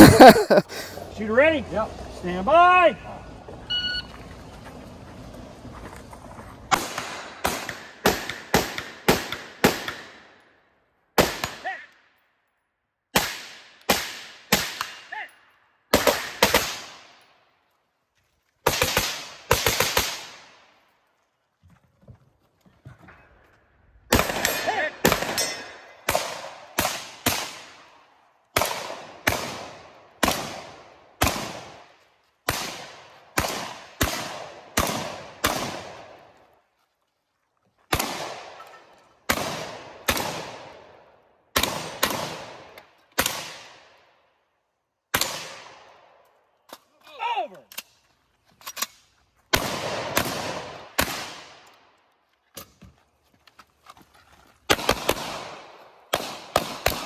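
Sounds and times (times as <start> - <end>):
sharp gunshots: 6.7 - 10.2, 11.2 - 11.7, 13.1 - 15.2, 15.9 - 17.1, 18.6 - 20.6, 24.1 - 27.9, 28.6 - 36.2, 37.9 - 38.6, 39.3 - 40.9, 41.5 - 43.9, 45.1 - 45.9, 49.5 - 51.6, 54.7 - 57.0.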